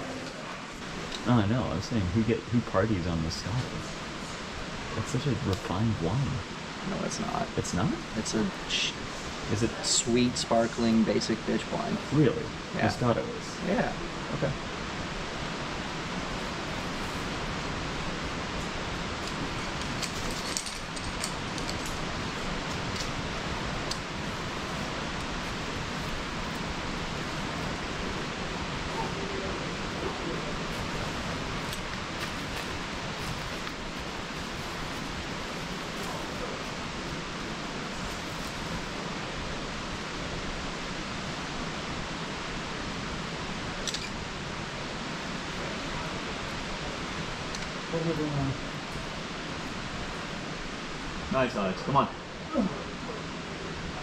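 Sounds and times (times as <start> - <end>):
outdoor background hiss: 0.0 - 54.0.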